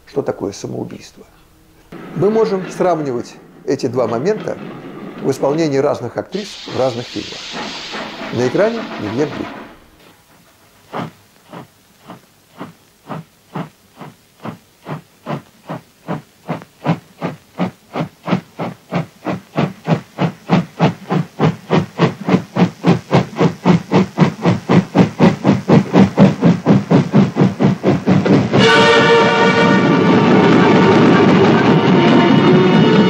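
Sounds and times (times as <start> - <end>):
steam locomotive chuffing: 2.0 - 33.0
loud held tone: 28.6 - 33.0.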